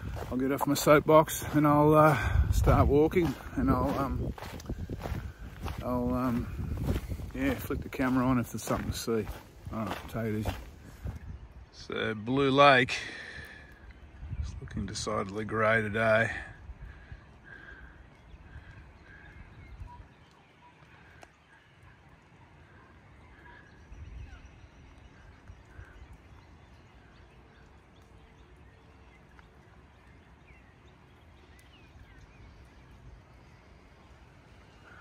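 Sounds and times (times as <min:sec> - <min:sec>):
bird calling: 0:00.0 - 0:11.2, 0:16.9 - 0:35.0.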